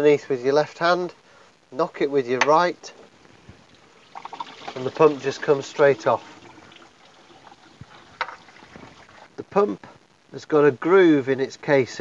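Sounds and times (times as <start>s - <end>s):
coolant trickling: 3.2s - 9.4s.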